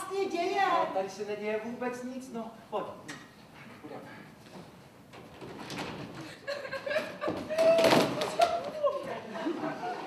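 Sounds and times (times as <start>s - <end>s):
woman wailing: 7.5s - 9.2s.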